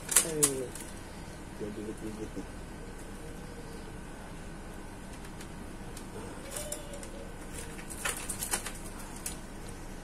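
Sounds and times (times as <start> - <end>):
cage wire rattling: 6.2 - 9.4.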